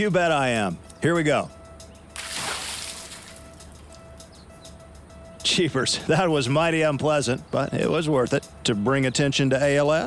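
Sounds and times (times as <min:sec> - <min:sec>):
water splash: 0:02.2 - 0:03.6.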